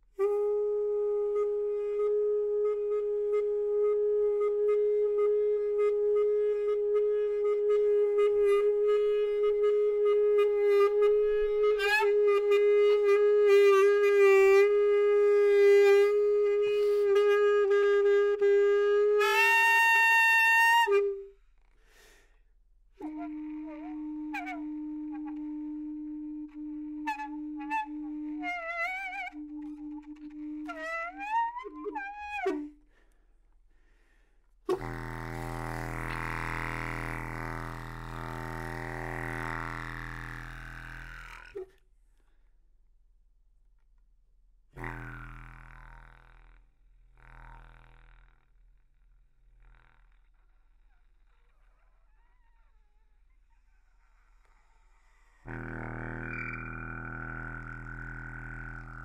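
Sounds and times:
hose horn holding long notes: 0.2s - 21.2s, 34.7s - 41.6s, 44.8s - 45.7s, 55.4s - 59.0s.

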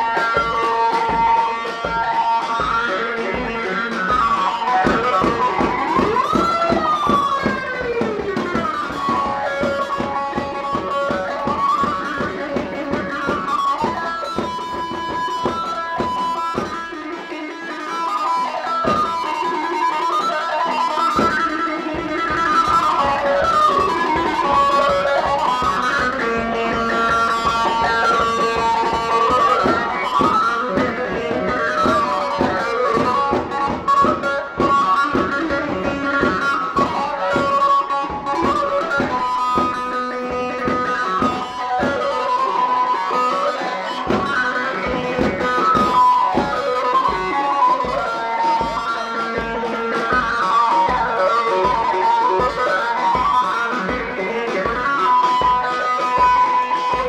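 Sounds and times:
driving deep beat: 0.0s - 57.0s
plucked string lead melody: 0.0s - 57.0s.

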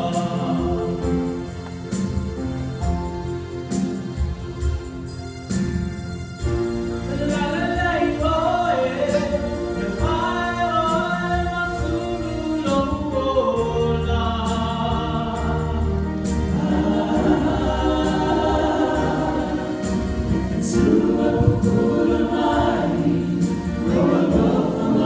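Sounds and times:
group singing a hymn: 0.0s - 2.0s, 8.4s - 25.0s
instrumental backing: 0.0s - 25.0s.

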